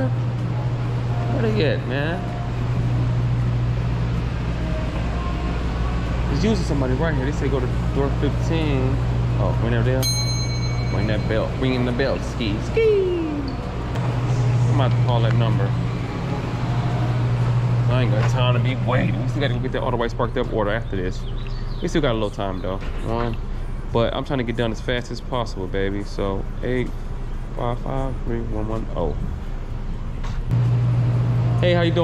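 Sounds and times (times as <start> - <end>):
steady low hum: 0.0 - 32.0.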